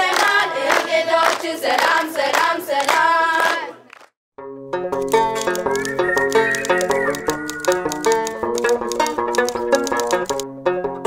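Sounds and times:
girls singing together: 0.0s - 3.8s
hand claps: 0.1s - 4.1s.

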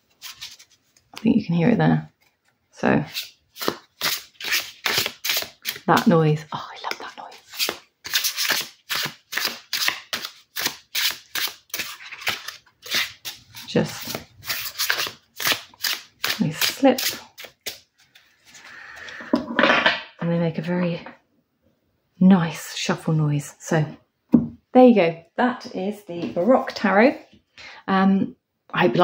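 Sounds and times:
cards being shuffled: 0.1s - 1.2s, 2.2s - 6.1s, 6.8s - 18.6s.

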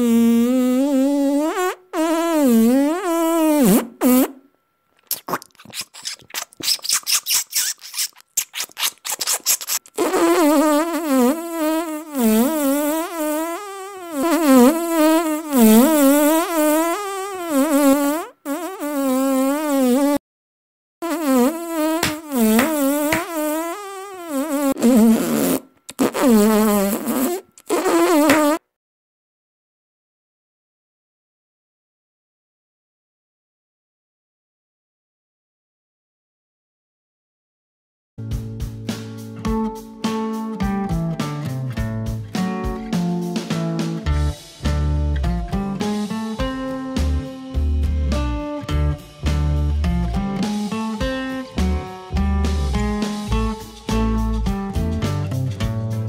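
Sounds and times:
cartoon mosquito buzz: 0.0s - 4.4s, 5.1s - 20.2s, 21.0s - 28.6s.

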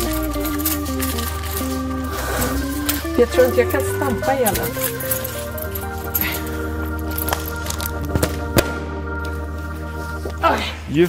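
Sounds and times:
background music with bass: 0.0s - 11.0s
balloon popping: 7.2s - 9.1s.

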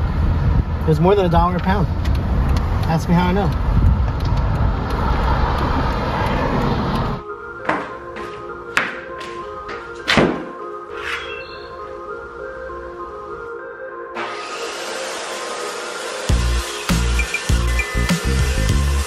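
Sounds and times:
car cabin road noise: 0.0s - 8.6s
background music: 7.0s - 19.0s
plywood sheets knocking on concrete: 7.6s - 10.5s.

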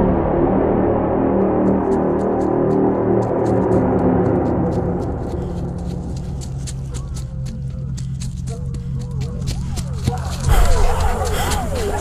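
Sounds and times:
deep gong-like drone: 0.0s - 1.9s.

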